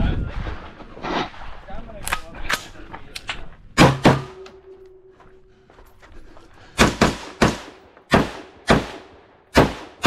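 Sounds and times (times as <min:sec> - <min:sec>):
sharp gunshots: 0:03.8 - 0:04.4, 0:06.8 - 0:10.0.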